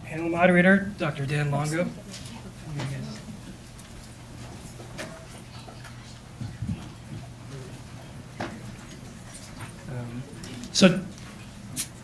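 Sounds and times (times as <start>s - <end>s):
murmur of voices: 0.0s - 12.0s
people moving about: 0.0s - 12.0s.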